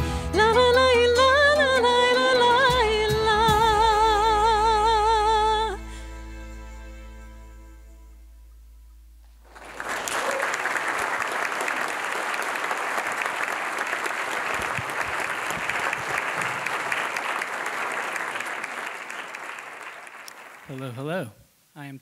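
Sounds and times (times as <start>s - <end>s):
audience applauding: 9.4s - 21.2s.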